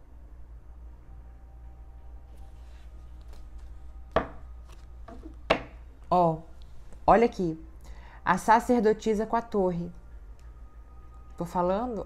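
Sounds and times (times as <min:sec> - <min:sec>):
cards shuffling: 0:02.4 - 0:03.8, 0:04.6 - 0:05.5
cards slapping: 0:04.2 - 0:05.6.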